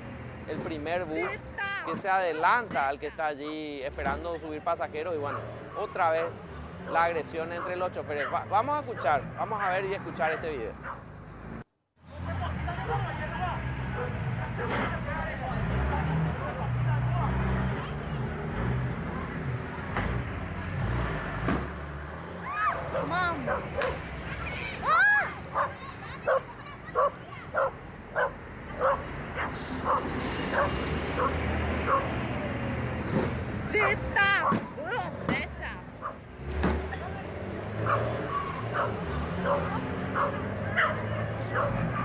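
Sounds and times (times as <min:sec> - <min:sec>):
dog barking: 0:01.2 - 0:01.4, 0:05.2 - 0:09.1, 0:10.3 - 0:11.0, 0:22.8 - 0:24.0, 0:25.5 - 0:32.1, 0:36.0 - 0:36.2, 0:37.8 - 0:42.0
people shouting: 0:22.4 - 0:23.5, 0:24.4 - 0:26.8.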